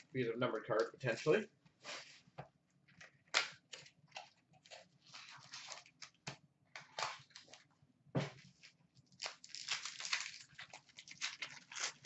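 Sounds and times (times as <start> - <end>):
foil wrapper crinkling and tearing: 4.7 - 6.2, 8.6 - 12.0.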